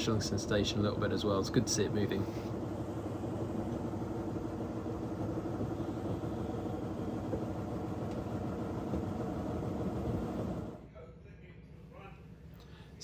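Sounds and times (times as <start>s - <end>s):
diesel locomotive engine droning: 0.0s - 10.8s.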